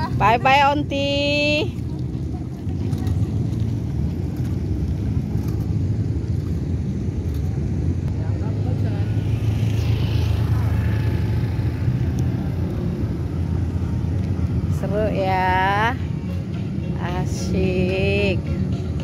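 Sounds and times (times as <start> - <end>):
low rumble of road traffic: 0.0 - 19.0.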